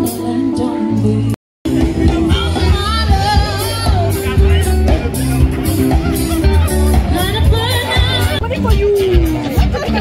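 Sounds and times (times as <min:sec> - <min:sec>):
live band playing: 0:00.0 - 0:10.0
pounding bass line: 0:01.6 - 0:10.0
people talking nearby: 0:01.7 - 0:10.0.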